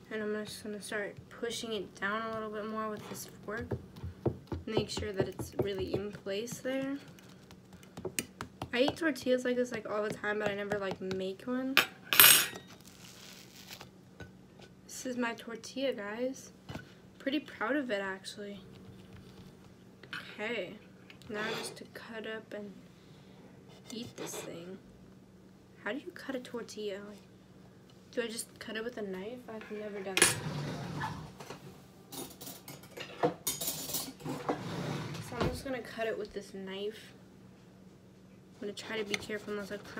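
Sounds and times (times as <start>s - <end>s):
low steady hum: 0.0s - 39.9s
tortilla rustling: 12.7s - 13.9s.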